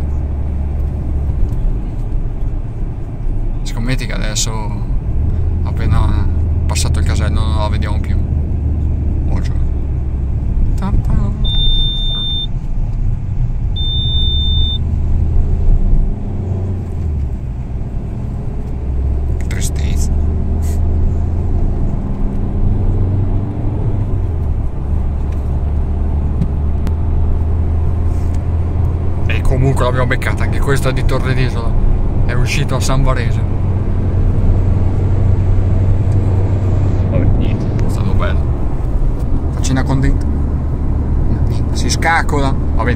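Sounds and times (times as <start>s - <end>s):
car engine and tyres rumbling: 0.0s - 42.9s
high electronic beeps: 11.4s - 12.5s, 13.8s - 14.8s.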